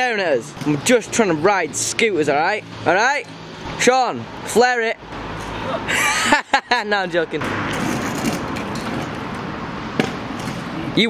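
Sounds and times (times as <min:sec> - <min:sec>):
scooter wheels rolling on concrete: 0:07.3 - 0:11.0.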